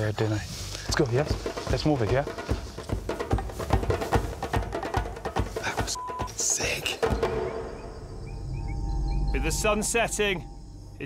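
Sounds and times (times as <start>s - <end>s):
low steady rumble: 7.8s - 11.0s.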